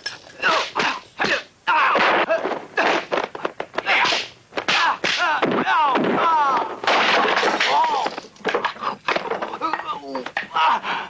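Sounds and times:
man shouting: 3.8s - 6.8s.

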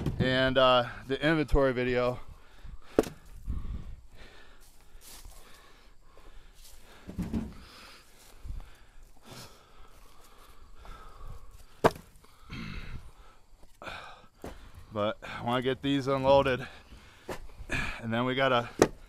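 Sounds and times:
dull wooden thuds: 0.0s - 0.6s, 2.8s - 3.4s, 6.9s - 7.8s, 11.7s - 12.2s, 14.4s - 14.8s, 16.2s - 17.6s, 18.6s - 19.0s
firewood clacking: 2.9s - 3.3s, 11.8s - 12.3s, 18.7s - 19.0s.

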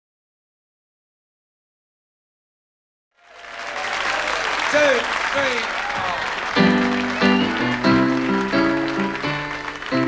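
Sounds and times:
audience clapping and cheering: 3.2s - 10.0s.

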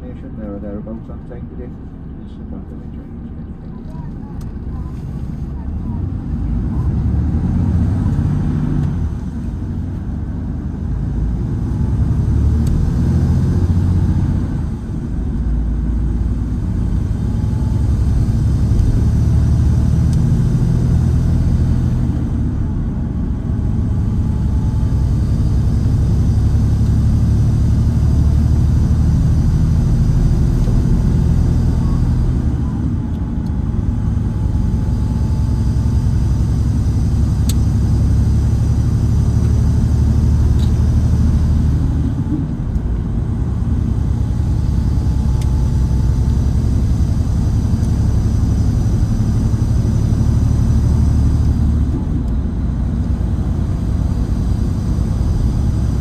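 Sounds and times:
coach diesel engine drone: 0.0s - 56.0s
road noise: 0.0s - 56.0s.

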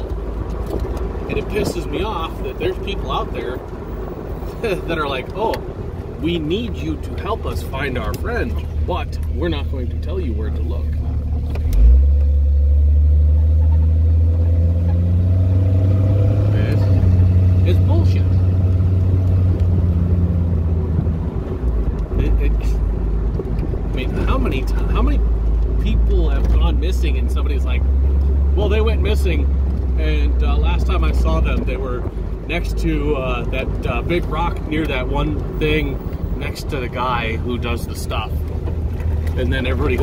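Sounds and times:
car engine droning: 0.0s - 40.0s
road noise inside car: 0.0s - 40.0s.

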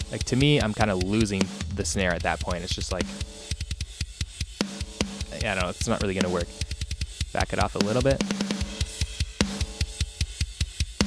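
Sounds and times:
compressed kick and snare drums: 0.0s - 11.0s.

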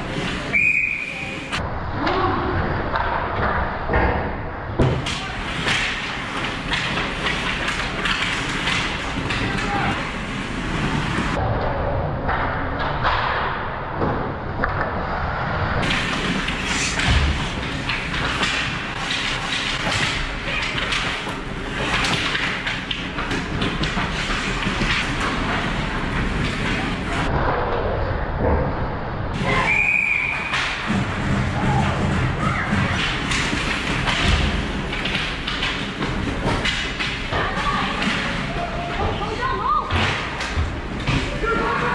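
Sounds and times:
skates scraping ice: 0.0s - 1.6s, 5.4s - 11.4s, 15.3s - 27.3s, 29.4s - 41.9s
high whistle: 0.5s - 1.4s, 29.5s - 30.5s
hockey sticks and puck clacking: 4.8s - 11.4s, 15.8s - 27.3s, 29.4s - 41.9s.

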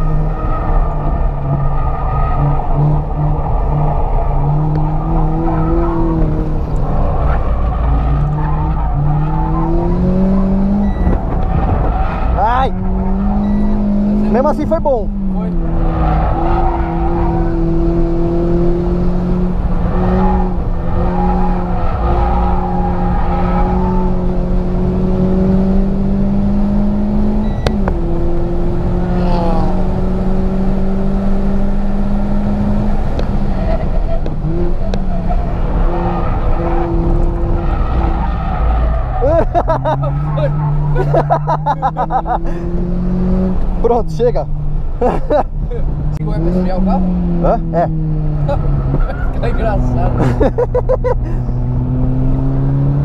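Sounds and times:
car engine accelerating: 0.0s - 53.0s
road noise rumble: 0.0s - 53.0s.

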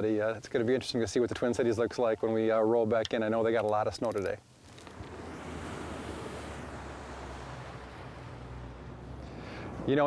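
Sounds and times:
boat motor humming: 4.6s - 9.9s
water noise: 4.6s - 10.0s.

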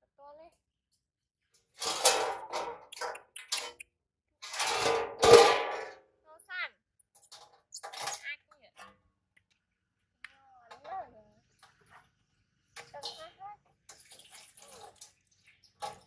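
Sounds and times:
water splashing in metal basin: 12.8s - 16.0s.

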